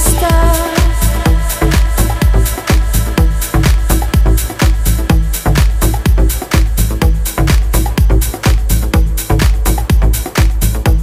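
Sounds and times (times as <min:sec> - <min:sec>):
kick drum beat: 0:00.0 - 0:11.0
synth chords: 0:00.0 - 0:11.0.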